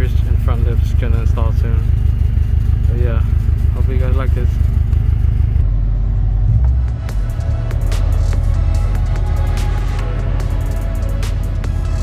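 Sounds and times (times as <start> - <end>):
car engine idling: 0.0 - 12.0
background music with sharp hits: 6.4 - 12.0.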